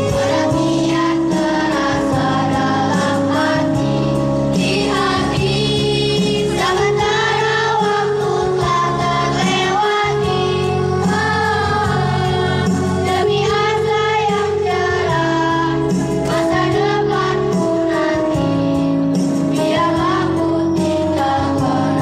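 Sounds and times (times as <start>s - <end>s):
children's choir singing: 0.0s - 22.0s
instrumental accompaniment: 0.0s - 22.0s.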